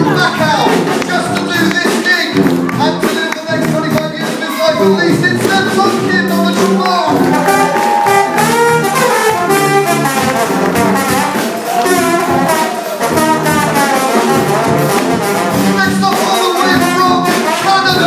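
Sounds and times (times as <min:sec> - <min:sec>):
brass band playing: 0:00.0 - 0:18.0.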